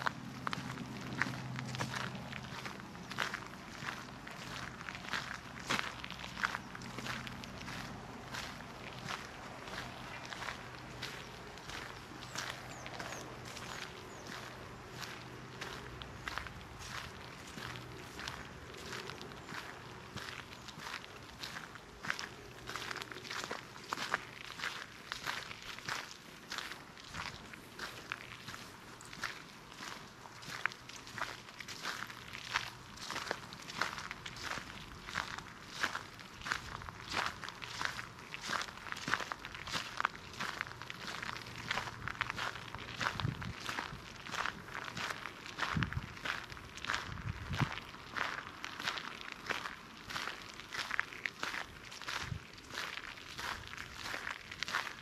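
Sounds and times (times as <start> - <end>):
footsteps crunching on gravel: 0.0 - 55.0.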